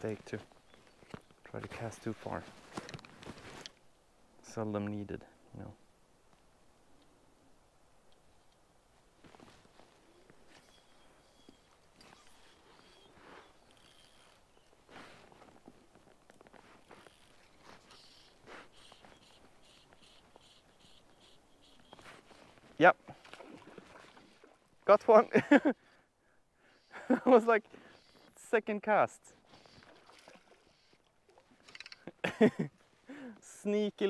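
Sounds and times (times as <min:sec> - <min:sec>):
fishing line and rod rustling: 0:00.1 - 0:03.8, 0:08.2 - 0:24.9, 0:29.3 - 0:32.2.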